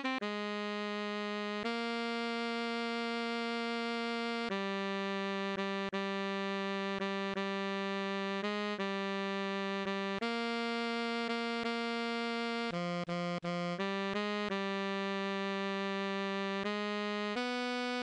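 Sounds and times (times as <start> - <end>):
saxophone melody: 0.0 - 18.0.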